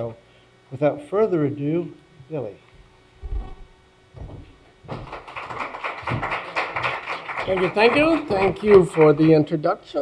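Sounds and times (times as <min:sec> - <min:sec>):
audience applauding: 0:04.9 - 0:09.6.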